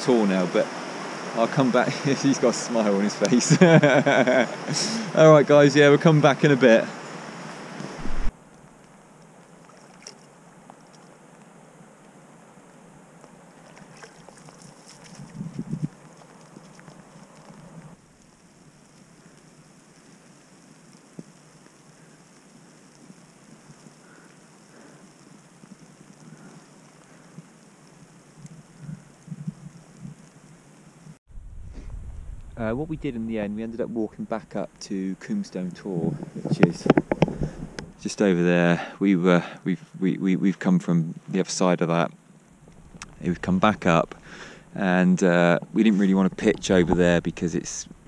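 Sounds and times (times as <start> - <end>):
wind noise: 7.8 - 8.4, 15.0 - 18.0, 28.4 - 30.3, 31.3 - 34.8, 35.8 - 38.1, 42.6 - 44.8, 45.6 - 48.0
low bumps: 7.9 - 8.4, 31.3 - 34.9, 42.6 - 48.0.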